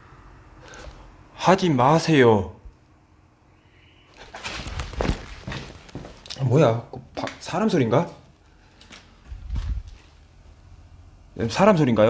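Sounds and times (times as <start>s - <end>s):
clothing rustling and scuffing: 4.2s - 6.2s
footsteps: 4.2s - 6.4s, 8.8s - 10.2s.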